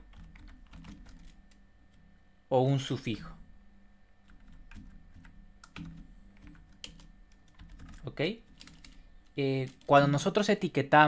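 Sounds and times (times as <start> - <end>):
low steady hum: 0.0 - 11.0
computer keyboard key clicks: 0.1 - 1.6, 4.3 - 10.0.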